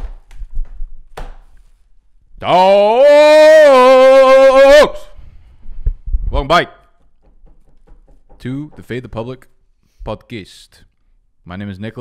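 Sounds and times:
man shouting into microphone: 2.4 - 5.2.

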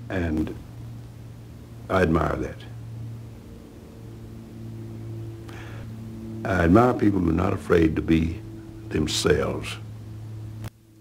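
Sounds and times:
steady low hum: 0.0 - 11.0
faint held tones: 2.6 - 11.0.

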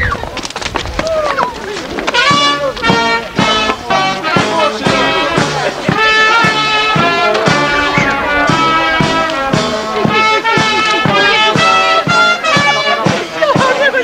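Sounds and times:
brass band music: 2.1 - 14.0.

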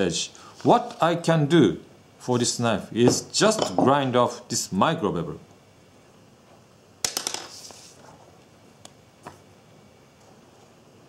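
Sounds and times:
paper rustle: 7.4 - 8.3.

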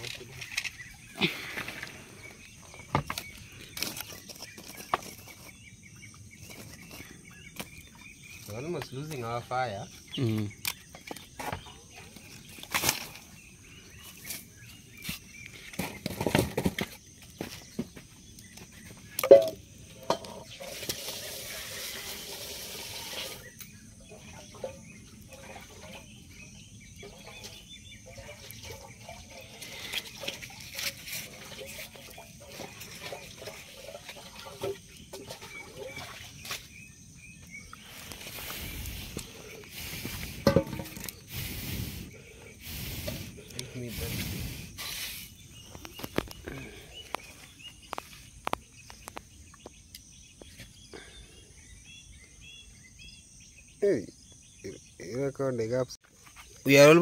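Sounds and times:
firewood knocking against stones: 2.6 - 5.4, 40.1 - 41.2.

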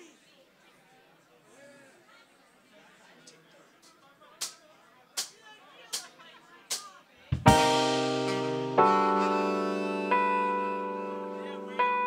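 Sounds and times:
faint crowd murmur: 0.0 - 12.0.

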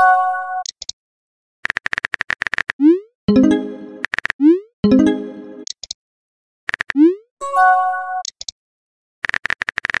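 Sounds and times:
bright message chime: 3.3 - 4.0, 4.8 - 5.6.

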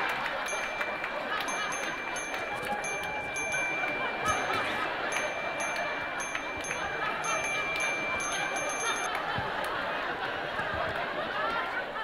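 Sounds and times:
audience laughter: 0.0 - 12.0
short high chimes: 0.4 - 9.1.

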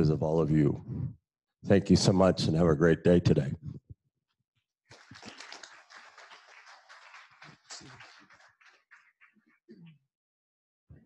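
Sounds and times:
audience applauding: 4.9 - 9.5.

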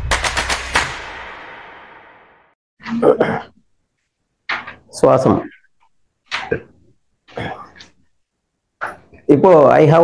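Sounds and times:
rapid electronic percussive hits: 0.0 - 2.6.

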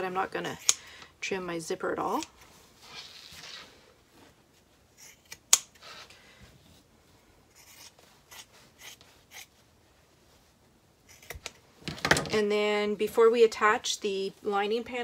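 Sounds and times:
shears snipping fabric: 7.5 - 9.5, 11.1 - 11.5.

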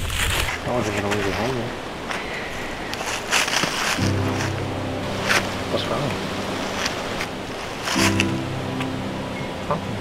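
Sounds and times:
soft rustles: 0.0 - 4.6
wind on microphone: 0.0 - 8.2
faint background music: 3.8 - 10.0.

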